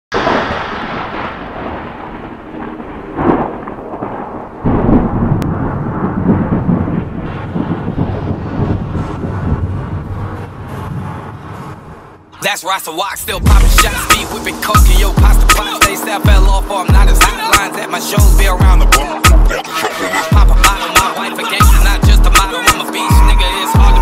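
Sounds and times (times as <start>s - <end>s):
thunder-like rumbling: 0.1s - 12.3s, 13.2s - 17.2s.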